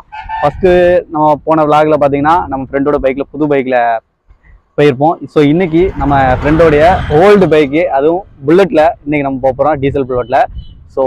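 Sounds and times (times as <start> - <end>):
man speaking: 0.0 - 4.0, 4.8 - 11.0.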